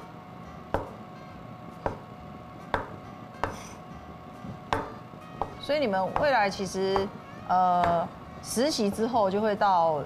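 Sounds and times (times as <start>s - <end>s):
cleaver chopping on wooden board: 0.8s - 1.0s, 1.8s - 2.0s, 2.7s - 3.6s, 4.7s - 5.6s.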